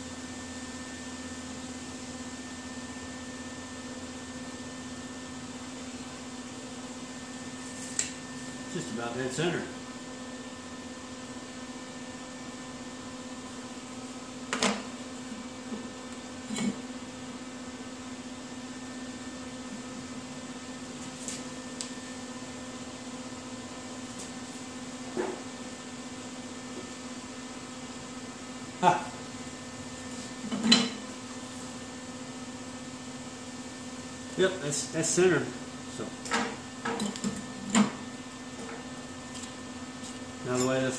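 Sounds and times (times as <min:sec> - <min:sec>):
electrical hum: 0:00.0 - 0:40.9.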